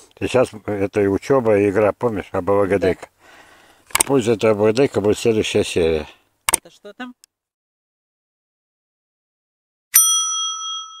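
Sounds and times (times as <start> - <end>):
notification bell ding: 9.9 - 11.0.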